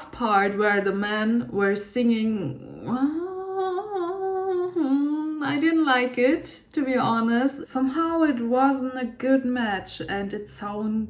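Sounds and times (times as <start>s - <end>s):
woman humming: 2.4s - 5.8s.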